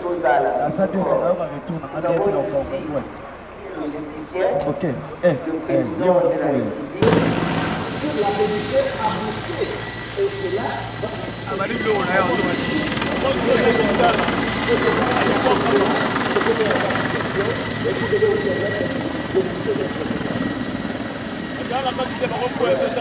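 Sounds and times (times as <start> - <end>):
crowd voices: 0.0 - 23.0
helicopter flying low past: 0.0 - 23.0.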